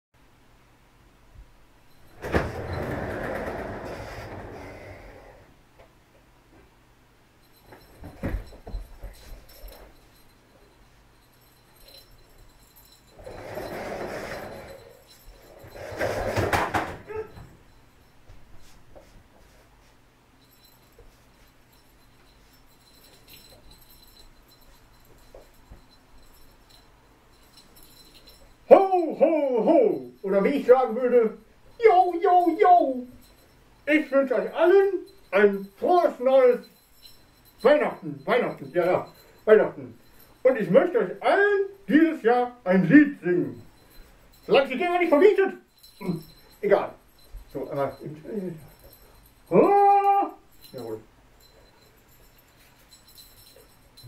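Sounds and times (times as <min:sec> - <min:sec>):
chair casters rolling on hard floor: 0:02.1 - 0:05.5, 0:13.1 - 0:17.6
man calling ho ho ho: 0:28.7 - 0:33.2, 0:33.9 - 0:36.6, 0:44.5 - 0:46.9, 0:49.5 - 0:51.0.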